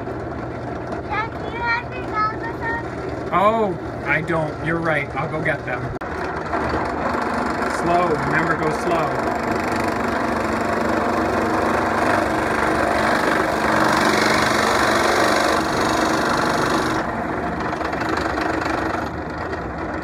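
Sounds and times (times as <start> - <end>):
drill press motor running: 0.0 - 20.0
drill bit boring into wood: 6.4 - 17.1.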